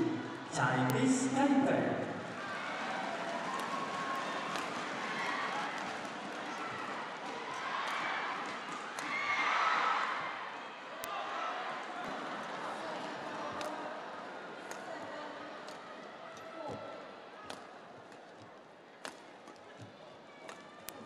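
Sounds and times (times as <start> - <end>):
crowd shouting: 2.0 - 17.8
racket hitting shuttlecock: 3.5 - 9.1.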